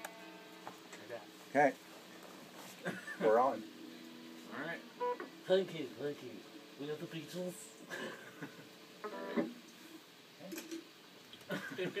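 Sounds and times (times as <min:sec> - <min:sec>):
electric guitar picked notes: 0:03.4 - 0:05.5, 0:09.0 - 0:09.7.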